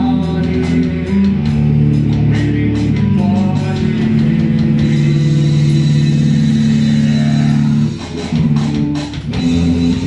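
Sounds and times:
rock band playing: 0.0 - 10.0
distorted guitar chord ringing: 3.8 - 8.7.

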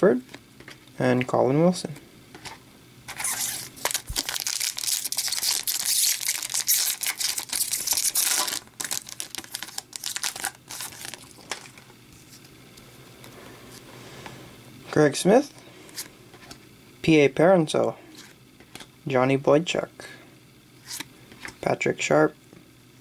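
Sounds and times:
foil wrapper crinkling and tearing: 3.1 - 11.8.

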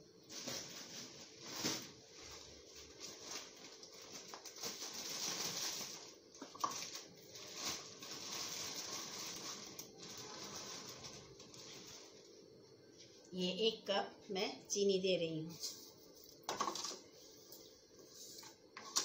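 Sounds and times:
sugar rustling and pattering: 0.2 - 13.3.

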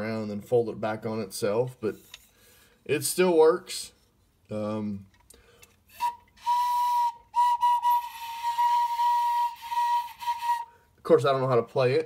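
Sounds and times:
toy wind instrument high note: 5.9 - 10.7.

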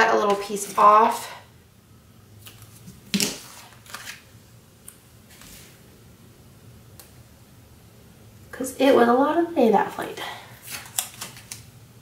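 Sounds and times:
paper and tape handling: 2.4 - 5.6, 10.6 - 11.7.

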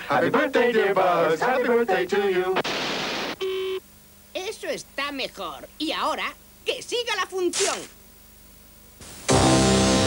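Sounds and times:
faint tape hum: 0.0 - 10.0
videotape static hiss: 0.0 - 10.0
voice: 4.4 - 8.0.

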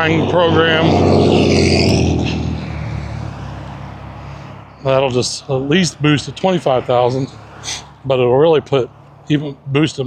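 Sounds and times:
passing vehicle rumble and tyre noise: 0.0 - 10.0.

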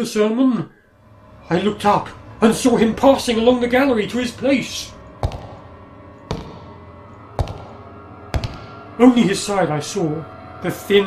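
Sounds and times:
low steady hum: 0.5 - 11.0
heavy footsteps on stone floor: 5.2 - 6.8, 7.4 - 8.8.

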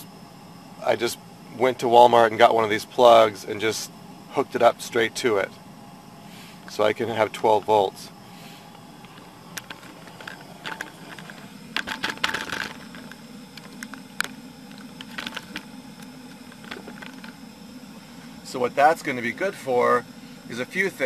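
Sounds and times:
steady low hum: 0.0 - 21.0
camera handling clicks and rustles: 9.0 - 17.4.

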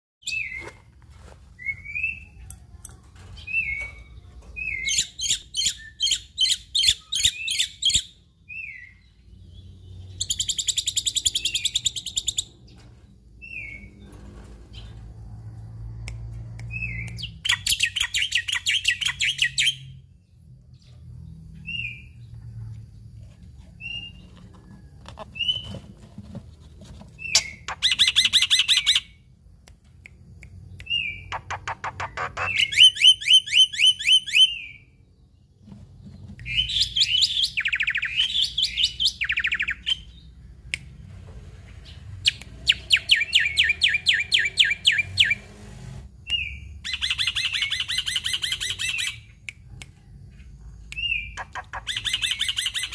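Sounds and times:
bird chattering: 31.0 - 34.4, 51.0 - 52.9.

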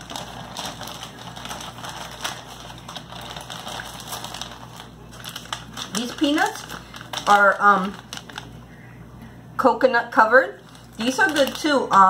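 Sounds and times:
plastic packaging crinkling: 0.0 - 8.7, 10.6 - 12.0.

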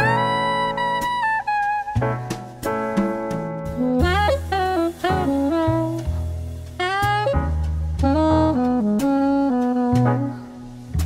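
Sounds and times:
saxophone playing: 0.0 - 2.6, 3.8 - 10.9
low bass line: 0.0 - 11.0.

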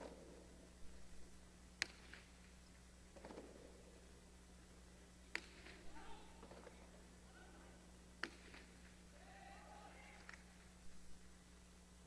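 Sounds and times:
ball striking with sharp crack: 1.8 - 2.4, 5.3 - 6.7, 8.2 - 8.8.

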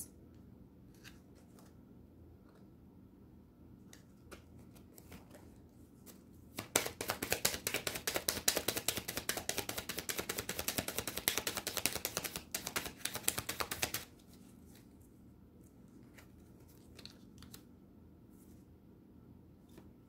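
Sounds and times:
cards being shuffled by hand: 4.0 - 15.1, 15.8 - 17.7.

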